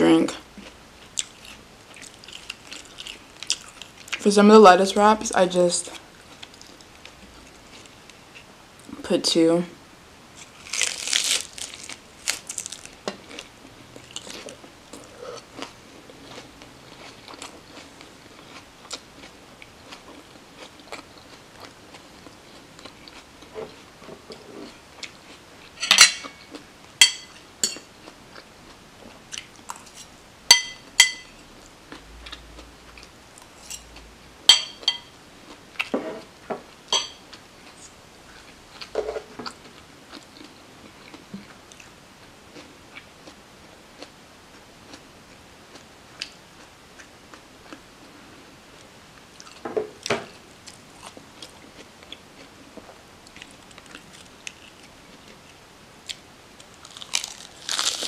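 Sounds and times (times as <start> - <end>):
crunchy chewing: 0.6 - 4.2, 10.4 - 28.5, 29.1 - 30.1, 49.3 - 49.6, 53.2 - 58.0
fork clinking against dish: 30.5 - 31.3, 34.5 - 35.1, 36.9 - 37.2.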